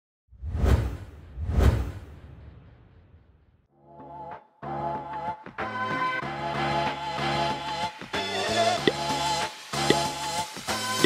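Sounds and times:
whoosh sound effects: 0.4s - 3.2s.

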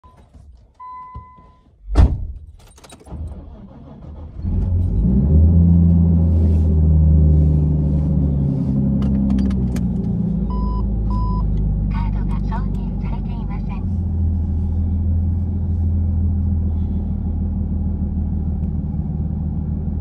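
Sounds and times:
car engine starting and idling: 1.7s - 20.0s
short electronic beeps: 10.5s - 11.5s.

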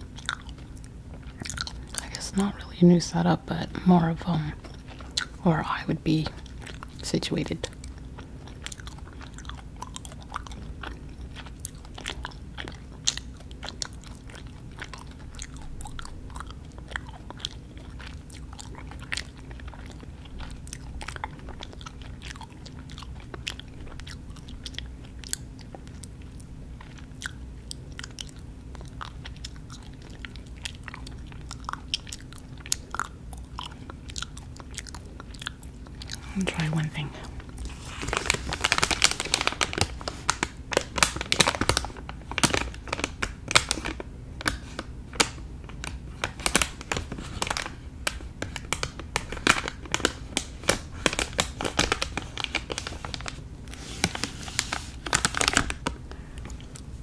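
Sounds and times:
chewing with mouth clicks: 0.0s - 2.3s, 4.5s - 5.4s, 6.2s - 57.0s
plastic bag crinkling: 35.9s - 56.9s.

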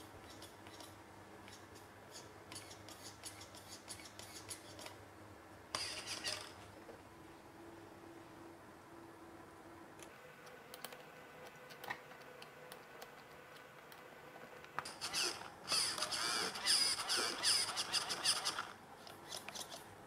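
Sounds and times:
servos whining: 5.7s - 6.6s, 14.9s - 19.9s.

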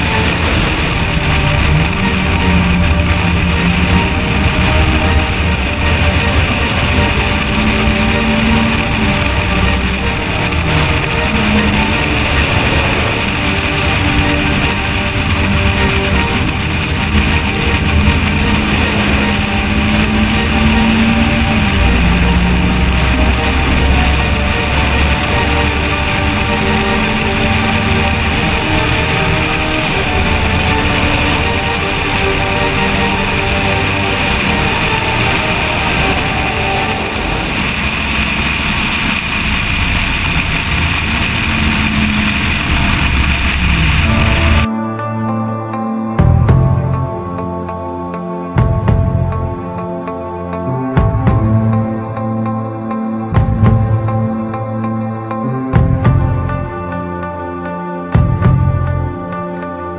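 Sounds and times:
car engine running hard: 0.0s - 44.7s.

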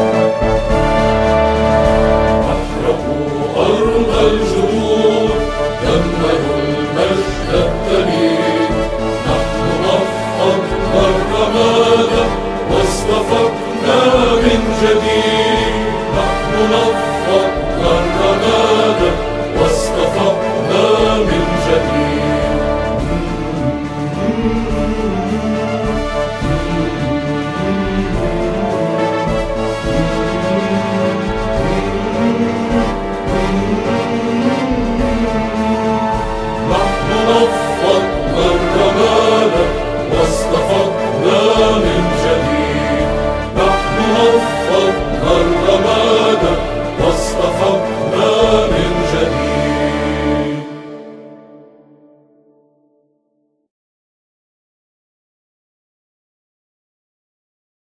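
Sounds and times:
choir singing an anthem: 0.0s - 52.0s
instrumental accompaniment: 0.0s - 52.6s.

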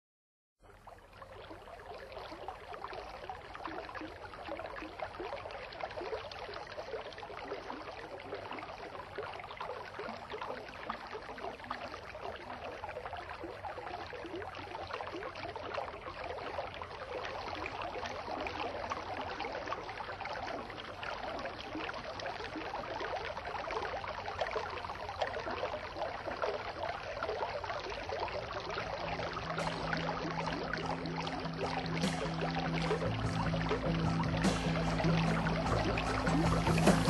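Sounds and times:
bubbling running water: 0.6s - 37.0s.

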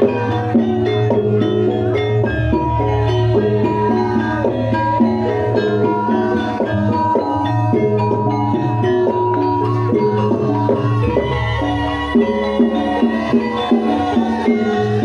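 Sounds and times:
gamelan music on metal keys: 0.0s - 15.0s.

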